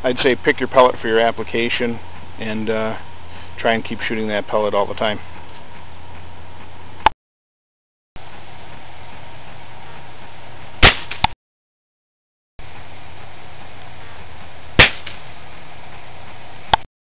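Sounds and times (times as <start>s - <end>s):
steady hiss: 0.0s - 7.0s, 12.6s - 16.8s
air rifle shots: 10.8s - 11.3s, 14.8s - 15.3s.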